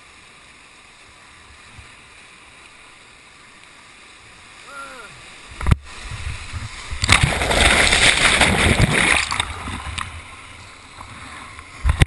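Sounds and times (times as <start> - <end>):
whitewater rushing over boat: 4.5 - 12.0.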